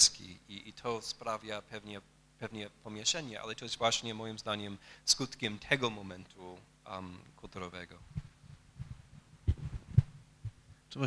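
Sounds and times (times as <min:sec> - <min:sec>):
microphone handling thumps: 0:08.0 - 0:10.8.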